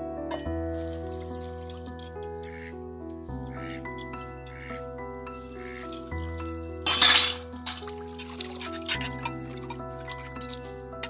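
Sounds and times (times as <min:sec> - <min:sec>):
instrumental music with slow chords: 0:00.0 - 0:11.0
water splash in metal basin: 0:05.6 - 0:11.0.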